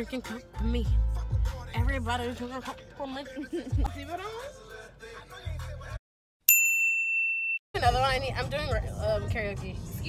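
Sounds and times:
bright bell-like ding: 6.5s - 7.6s.

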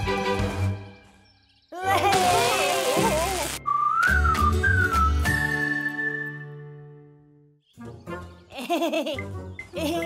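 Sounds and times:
whistled tune over low beat: 3.6s - 8.2s.

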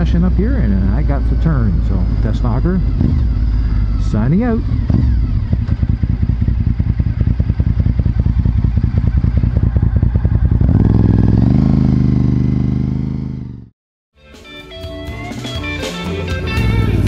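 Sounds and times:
motorcycle engine running: 0.0s - 13.7s, 16.3s - 17.0s.

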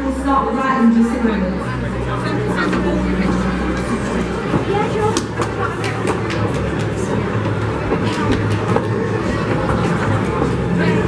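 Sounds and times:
crowd voices in echoing hall: 0.0s - 11.0s
music: 0.0s - 11.0s.

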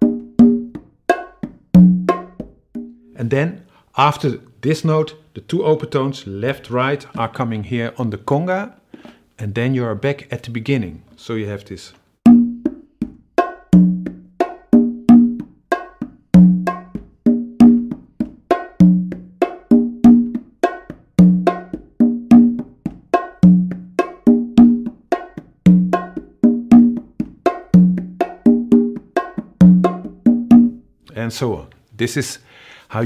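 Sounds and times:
congas and bongo playing: 0.0s - 3.2s, 12.2s - 30.9s.

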